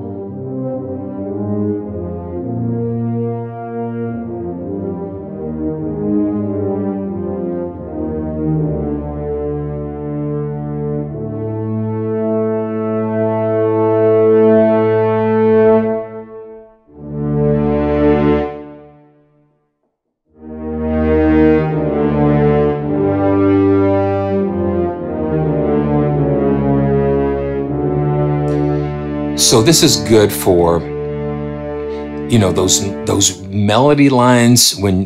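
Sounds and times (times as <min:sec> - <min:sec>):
french horns and tuba melody: 0:00.0 - 0:19.2, 0:20.3 - 0:35.0.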